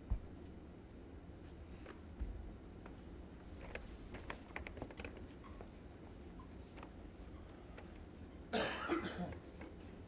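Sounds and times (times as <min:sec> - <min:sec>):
person coughing: 0:08.5 - 0:09.4.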